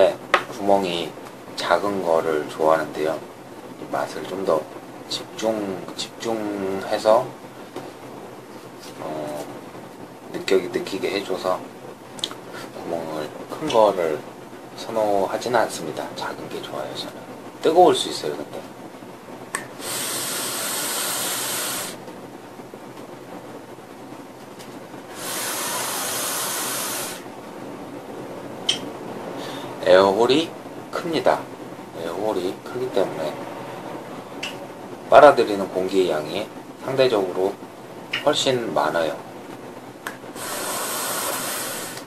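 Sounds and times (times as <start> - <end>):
long airy vaping hisses: 19.5 - 22.1, 25.0 - 27.4, 40.3 - 42.0.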